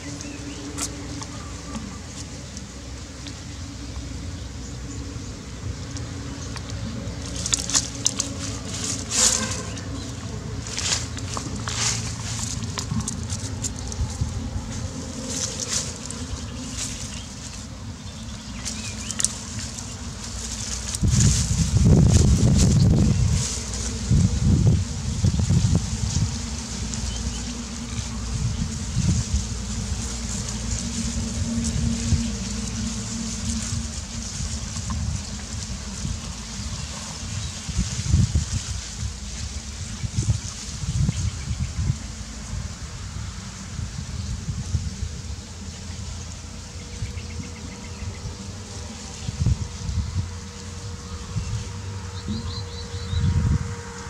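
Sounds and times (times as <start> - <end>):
paws scratching in dirt: 0.0 - 42.5
dry stalks rustling: 0.0 - 54.0
low microphone rumble: 0.0 - 54.0.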